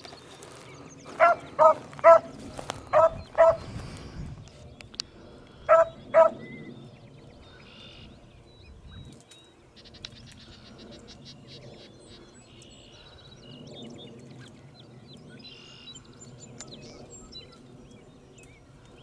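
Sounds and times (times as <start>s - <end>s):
dog baying with high barks: 1.2s - 2.3s, 2.9s - 3.6s, 5.7s - 6.4s.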